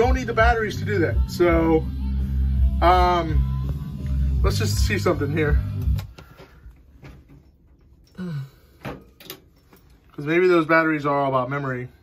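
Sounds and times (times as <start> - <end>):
radio music: 0.0 - 6.4.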